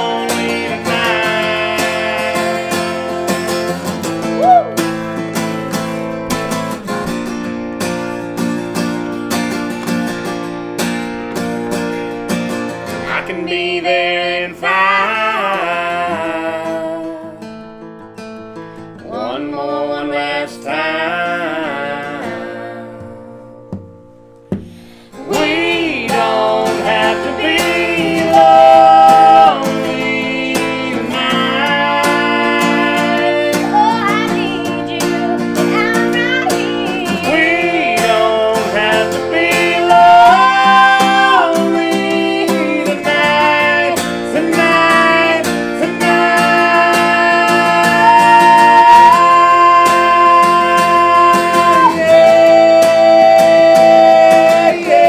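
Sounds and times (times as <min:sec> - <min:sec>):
woman and man singing: 0:00.0 - 0:04.7, 0:13.0 - 0:17.5, 0:19.0 - 0:23.3, 0:25.1 - 0:55.0
strummed acoustic guitar: 0:00.0 - 0:55.0.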